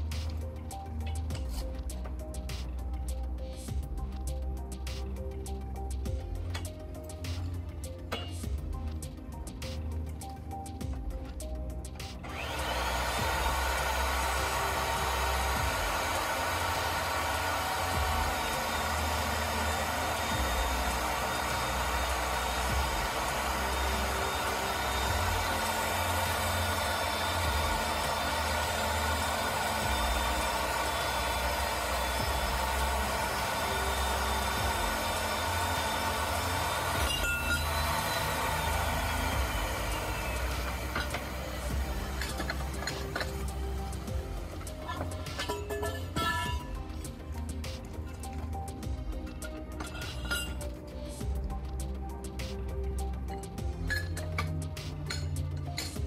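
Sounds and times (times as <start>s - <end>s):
pipe threading machine motor whine: 12.2s - 51.8s.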